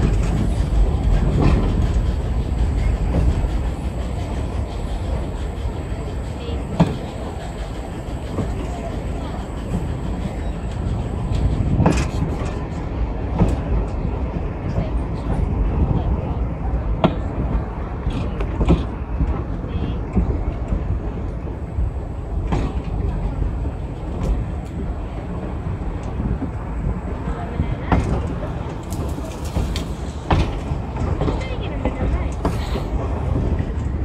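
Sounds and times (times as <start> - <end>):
train wheels rumbling: 0.0 - 34.0.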